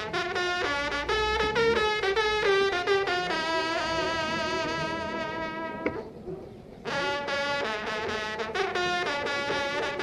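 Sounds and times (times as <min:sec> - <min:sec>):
hunting horn fanfare: 0:00.0 - 0:05.9, 0:06.8 - 0:10.0.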